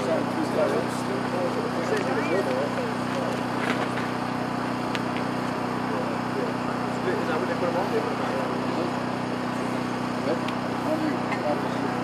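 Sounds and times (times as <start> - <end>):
indistinct voices talking: 0.0 - 12.0
steady low multi-tone hum: 0.0 - 12.0.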